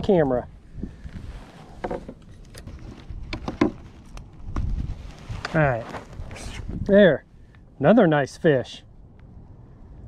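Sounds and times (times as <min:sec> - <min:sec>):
wind rumble on microphone: 0:00.0 - 0:10.0
knocks and clicks of handling: 0:01.8 - 0:02.7.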